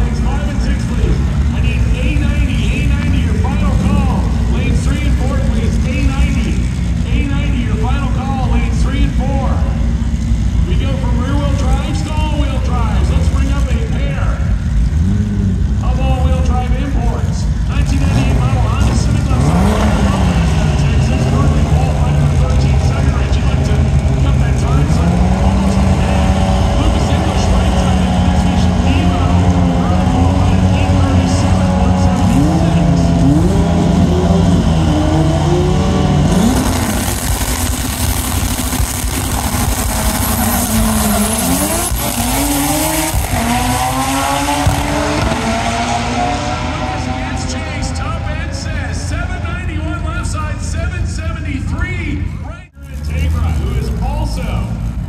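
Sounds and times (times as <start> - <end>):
drag racing car engines: 0.0 - 55.0.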